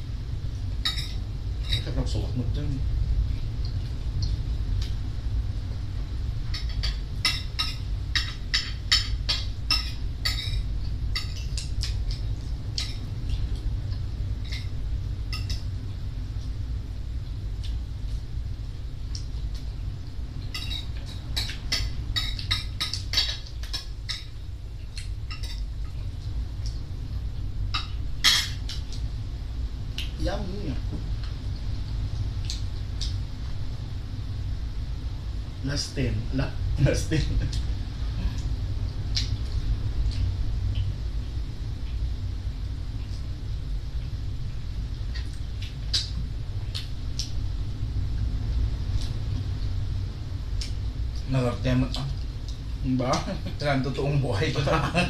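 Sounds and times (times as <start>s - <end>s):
low room noise rumble: 0.0s - 55.0s
steady low hum: 0.0s - 55.0s
chewing and lip-smacking: 11.2s - 14.7s, 32.1s - 33.2s, 39.1s - 41.0s, 45.1s - 47.4s, 50.5s - 51.3s.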